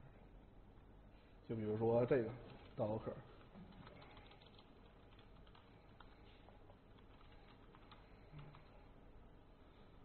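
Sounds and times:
computer keyboard typing: 2.3 - 8.9.

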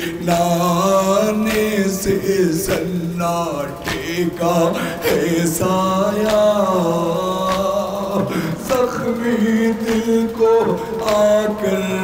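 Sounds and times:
men chanting through loudspeaker: 0.0 - 12.0
chest-beating slaps: 6.2 - 6.5.

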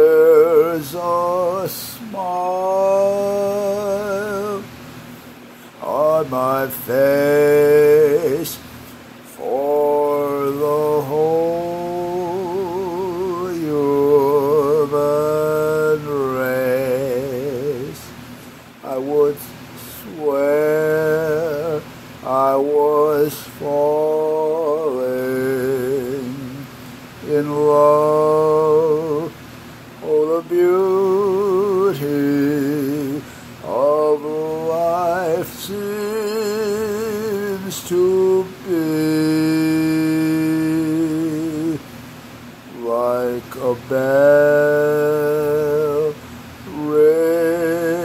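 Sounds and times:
man singing slow song: 0.0 - 42.0, 42.6 - 48.0.

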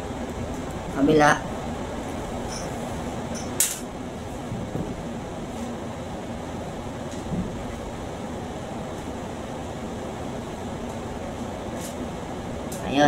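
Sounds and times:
fan-like room hum: 0.0 - 13.0.

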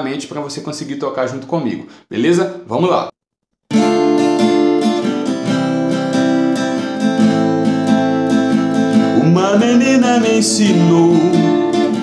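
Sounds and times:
acoustic guitar strumming: 3.7 - 12.0.

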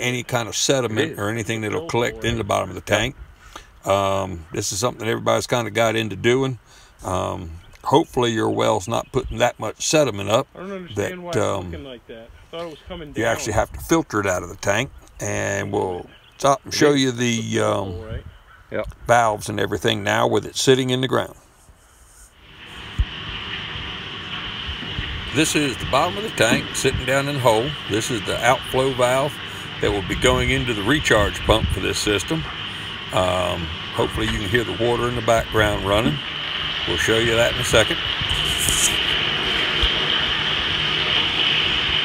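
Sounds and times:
water rushing from pipe: 0.0 - 11.8, 22.3 - 42.0
low rumble: 22.4 - 42.0.

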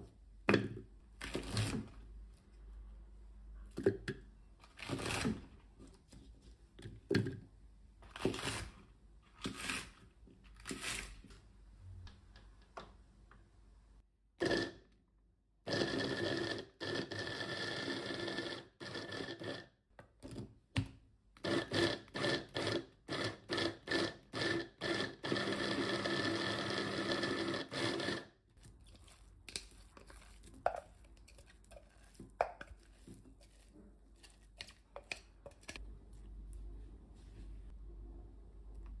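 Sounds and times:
food chopper motor: 14.4 - 14.8, 15.7 - 19.7, 21.4 - 28.4.

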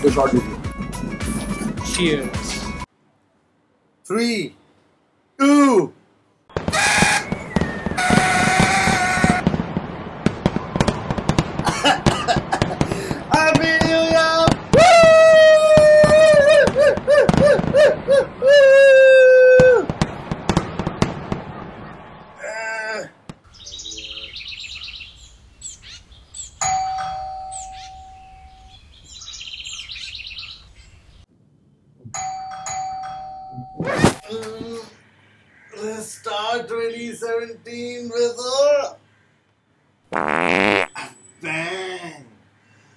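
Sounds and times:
party blowout horn buzzing: 6.8 - 7.4, 8.0 - 9.4.

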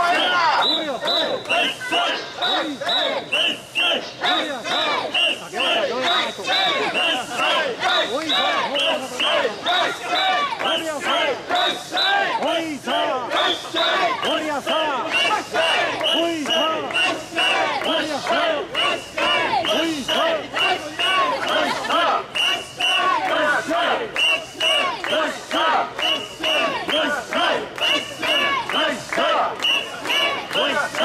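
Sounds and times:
crowd chanting: 0.0 - 31.0.

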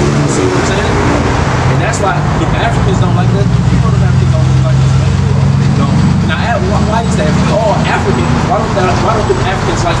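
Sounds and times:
road traffic engine hum: 0.0 - 10.0.

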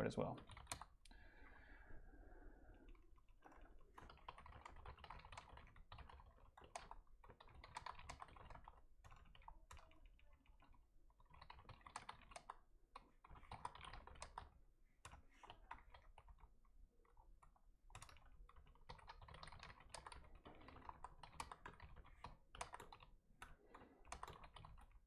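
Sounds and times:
faint keyboard typing: 0.1 - 25.0.

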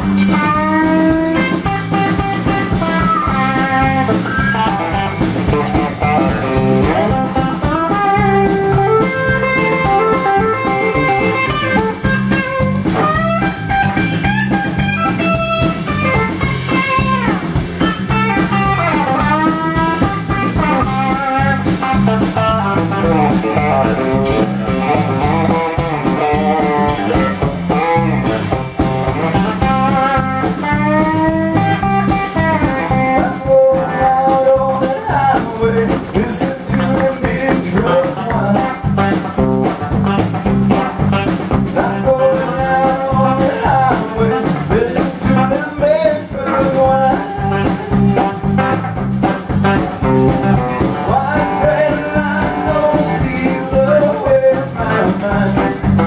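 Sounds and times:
electric guitar: 0.0 - 56.0
man singing: 29.3 - 39.2, 41.6 - 48.7, 50.5 - 56.0.

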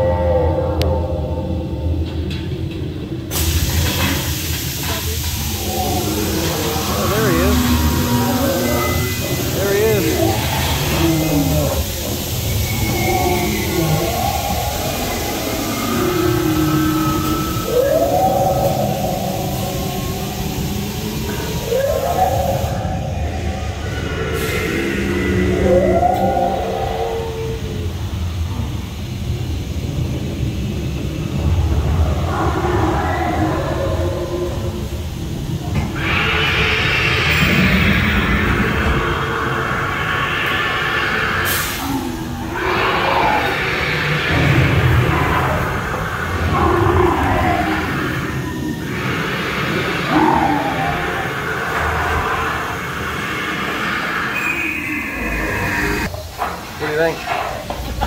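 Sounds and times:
animal roars and calls: 0.0 - 58.0
rushing noise: 0.0 - 58.0.

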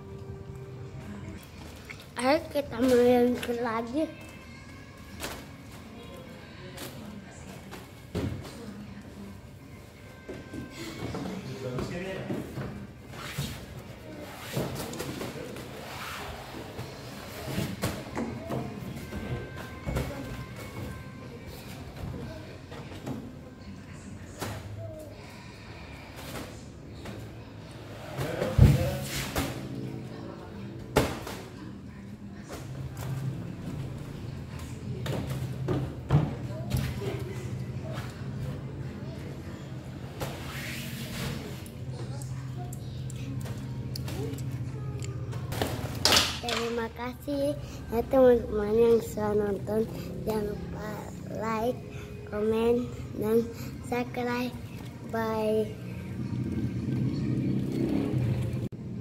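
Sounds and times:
music: 0.0 - 59.0.

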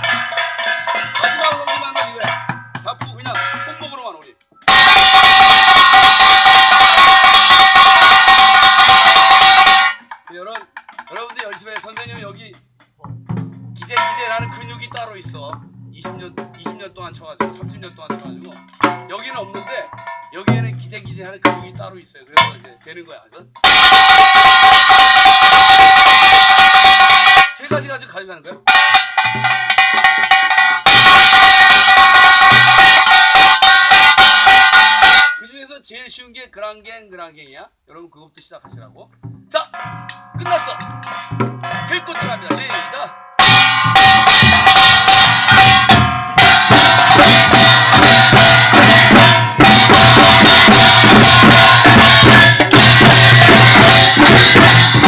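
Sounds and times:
small brass gong rapid roll: 43.4 - 55.0.

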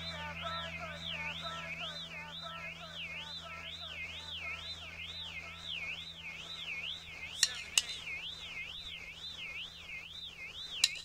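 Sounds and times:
steady low hum: 0.0 - 11.0
warbling electronic tone: 0.0 - 11.0
sharp clicks: 1.7 - 11.0.

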